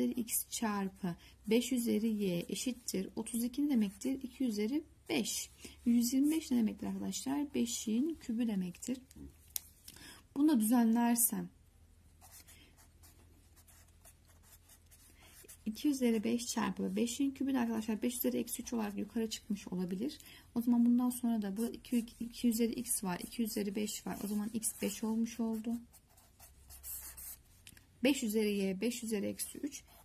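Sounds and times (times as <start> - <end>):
marker scratching on paper: 12.2 - 15.8, 21.5 - 27.6, 29.4 - 30.0.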